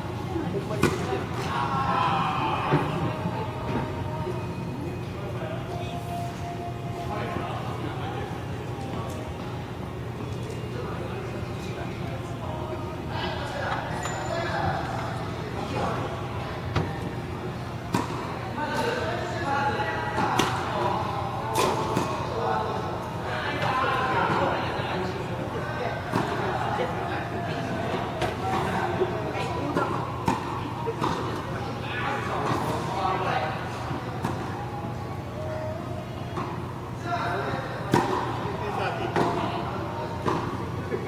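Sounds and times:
background chatter: 0.0s - 41.0s
faint voices: 0.0s - 41.0s.

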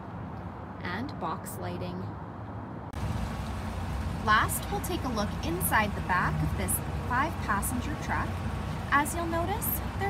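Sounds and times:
low rumble and hiss: 2.9s - 10.0s.

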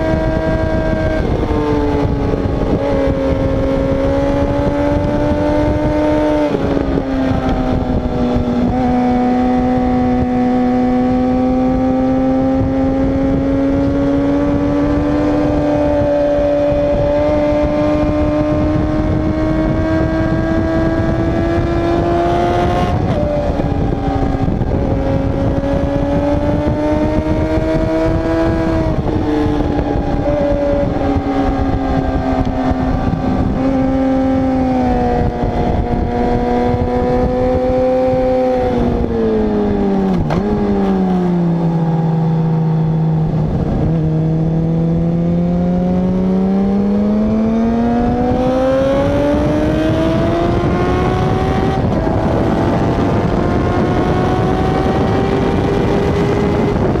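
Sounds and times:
motorcycle engine at high revs: 0.0s - 57.0s
wind rushing over camera: 0.0s - 57.0s.

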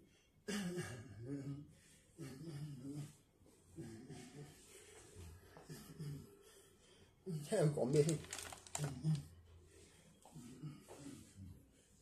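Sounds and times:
man making wordless vocal sounds: 7.3s - 9.4s.

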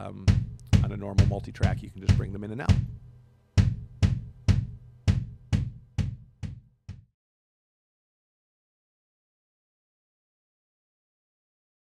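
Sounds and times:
drum hits with room ring: 0.0s - 7.1s.

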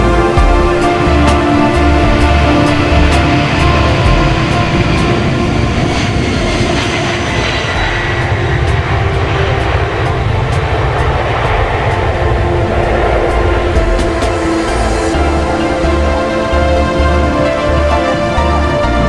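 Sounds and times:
background music with steady beat: 0.0s - 19.0s
jet airliner taking off: 0.0s - 19.0s.

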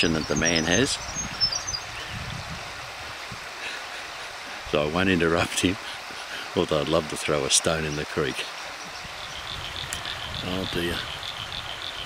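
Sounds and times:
creek running over rocks: 0.0s - 12.0s.

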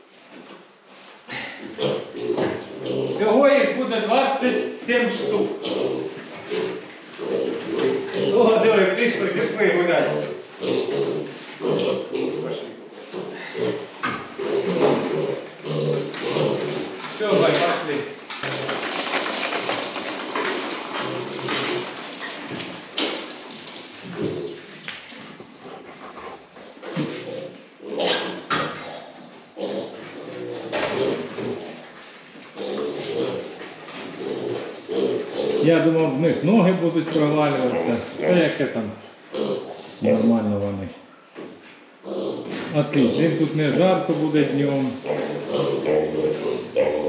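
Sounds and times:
piglets grunting: 1.3s - 3.4s, 5.1s - 22.4s, 24.0s - 24.7s, 25.4s - 31.8s, 32.6s - 33.6s, 34.2s - 36.1s, 39.3s - 41.1s, 42.0s - 47.0s
knocks and clatters on slatted floor: 16.7s - 24.3s.

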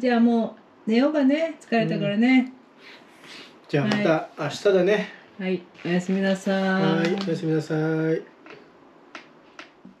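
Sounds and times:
person saying goodnight: 1.8s - 2.2s, 6.8s - 7.2s.

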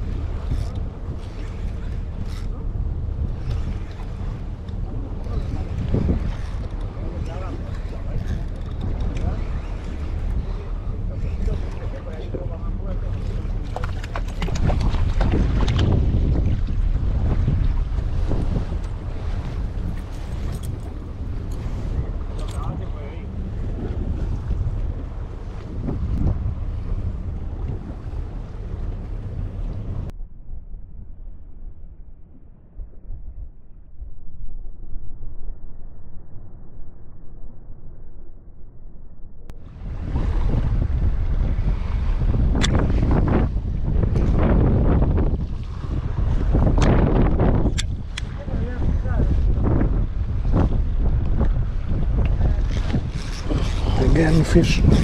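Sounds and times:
sea water washing around boat: 0.0s - 30.2s, 39.6s - 55.0s
wind buffeting microphone: 0.0s - 55.0s.

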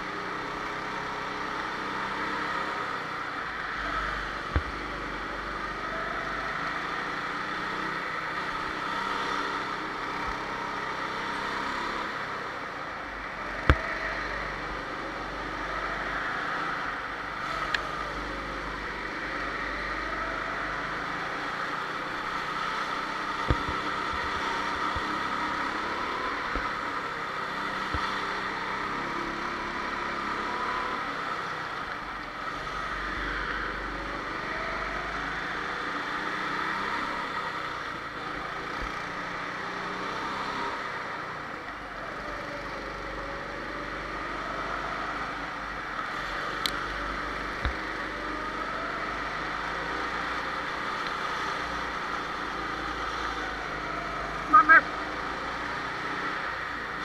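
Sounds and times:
go-kart motor running: 0.0s - 57.0s.

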